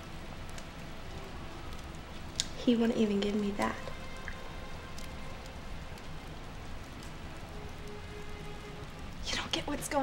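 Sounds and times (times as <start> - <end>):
rain-like hiss: 0.0 - 10.0.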